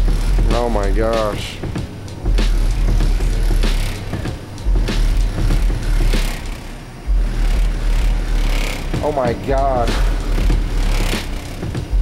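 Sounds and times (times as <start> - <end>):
bass-heavy music from subwoofers: 0.0 - 12.0.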